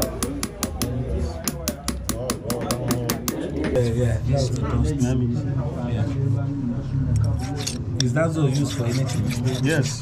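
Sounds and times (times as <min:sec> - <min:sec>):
people talking: 0:00.0 - 0:10.0
file rasping on brass: 0:08.4 - 0:10.0.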